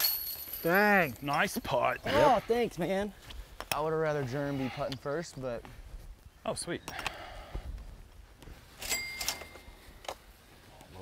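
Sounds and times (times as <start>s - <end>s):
high bell-like ring: 8.8s - 9.7s.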